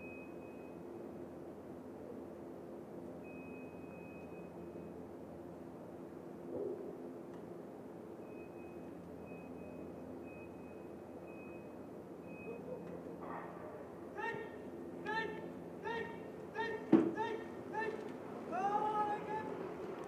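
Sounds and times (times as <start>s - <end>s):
long high beep: 0.0s - 0.8s, 3.2s - 4.9s
countdown clock beeps: 8.2s - 12.8s.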